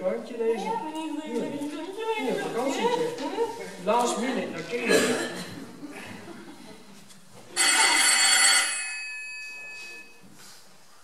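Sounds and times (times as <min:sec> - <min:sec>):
telephone ringing: 0:07.6 - 0:10.2.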